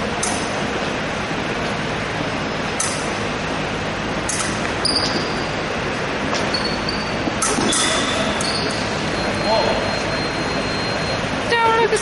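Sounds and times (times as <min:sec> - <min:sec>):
roomy hum: 0:00.0 - 0:12.0
distant voices: 0:04.0 - 0:12.0.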